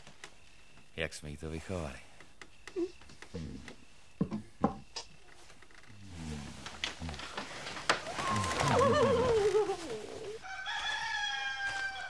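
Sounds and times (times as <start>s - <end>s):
rooster crowing: 8.1s - 12.0s.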